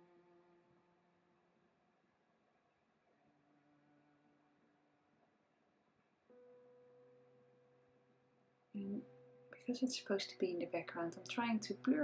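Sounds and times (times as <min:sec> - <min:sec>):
faint steady held tone: 0:06.2 - 0:11.8.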